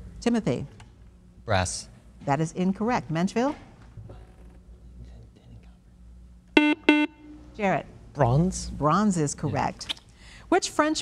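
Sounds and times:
quiz show buzzer tones: 6.6 - 7.3.

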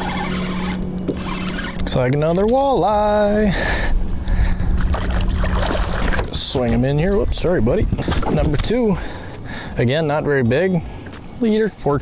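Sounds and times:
water noise: 0.0 - 11.0
low mechanical hum: 0.0 - 12.0
wind: 0.0 - 12.0.

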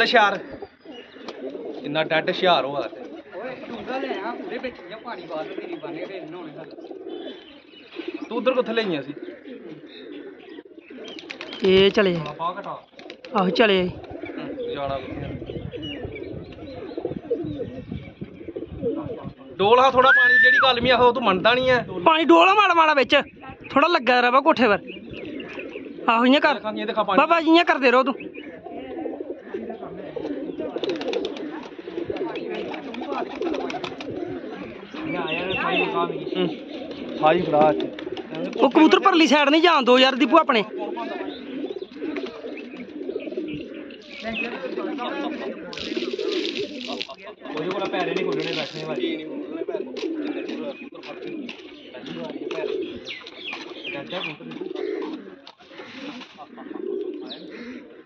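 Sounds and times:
pigeons cooing: 0.0 - 58.0.

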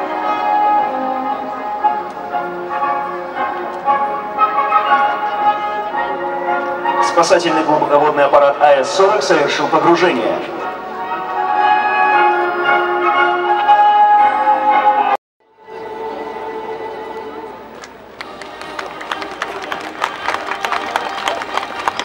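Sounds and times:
music: 0.0 - 22.0
quick sharp claps: 17.8 - 22.0.

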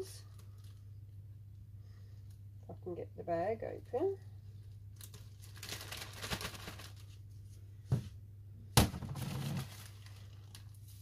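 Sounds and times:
plastic bag crinkling: 4.9 - 7.2, 9.1 - 11.0.

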